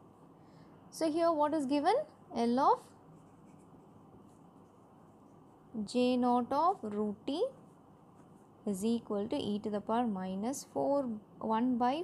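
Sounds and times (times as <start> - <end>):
pen scratching on paper: 3.2 - 5.5.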